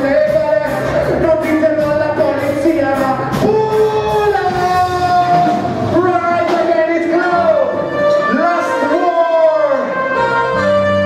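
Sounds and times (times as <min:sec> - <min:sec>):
live reggae band music: 0:00.0 - 0:11.0.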